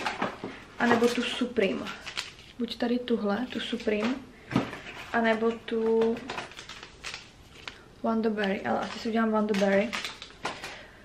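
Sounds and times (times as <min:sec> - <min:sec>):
paper sachets rustling: 0:00.0 - 0:11.0.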